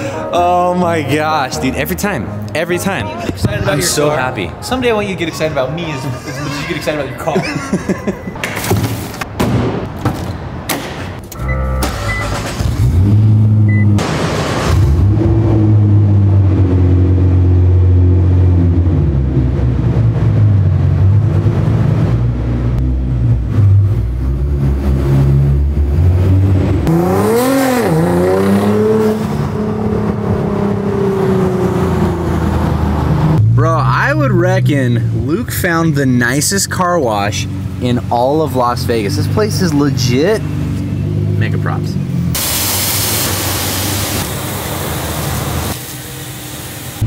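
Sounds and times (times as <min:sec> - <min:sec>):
car engine running and revving: 0:11.4 - 0:42.4.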